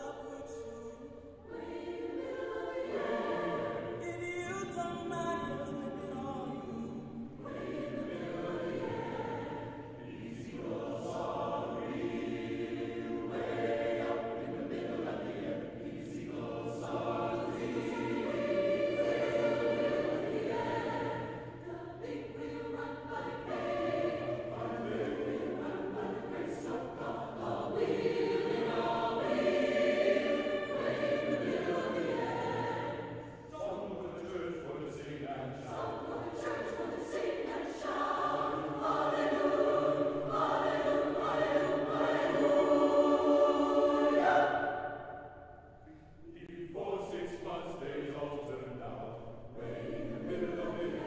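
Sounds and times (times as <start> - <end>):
mixed choir singing: 0.0 - 51.0.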